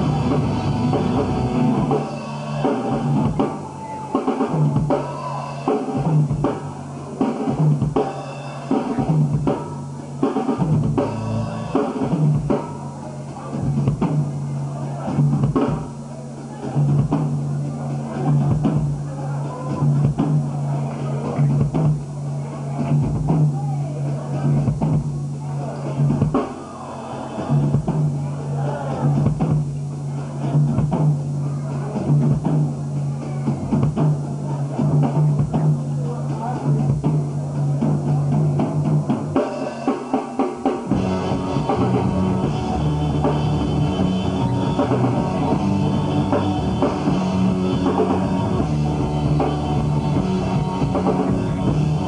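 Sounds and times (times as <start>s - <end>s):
distorted electric guitars: 0.0s - 52.0s
drum kit beat: 0.0s - 52.0s.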